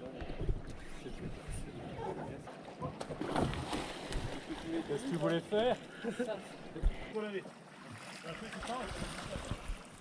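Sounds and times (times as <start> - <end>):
water splashing and sloshing: 2.3 - 10.0.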